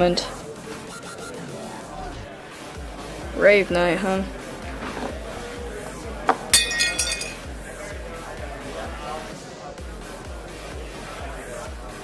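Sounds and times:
glass clinking: 6.3 - 7.5.

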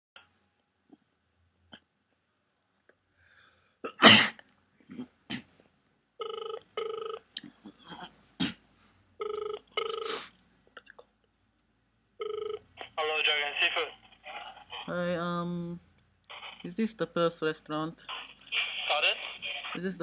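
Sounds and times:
person coughing: 3.9 - 5.4
telephone ringback tone: 6.2 - 7.2, 9.2 - 10.2, 12.2 - 12.6.

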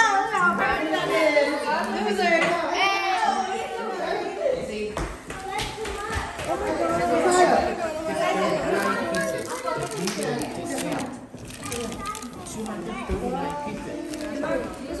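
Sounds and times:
children chattering: 0.0 - 15.0.

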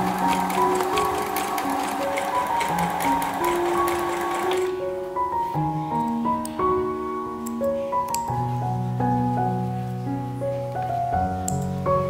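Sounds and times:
sewing machine stitching: 0.0 - 4.8
background music: 0.0 - 12.0.

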